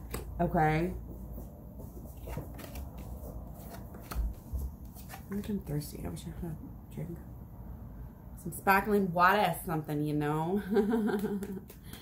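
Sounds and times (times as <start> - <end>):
cards shuffling clicks: 2.1 - 5.6.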